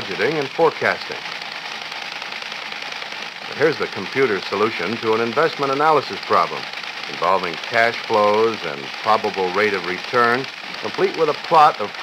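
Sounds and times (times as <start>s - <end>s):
teletype terminal chattering: 0.0s - 12.0s.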